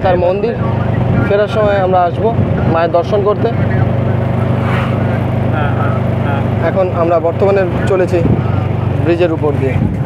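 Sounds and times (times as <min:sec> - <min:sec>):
road noise: 0:00.0 - 0:10.0
vehicle engine drone: 0:00.0 - 0:10.0
brief rush of noise: 0:04.4 - 0:05.2.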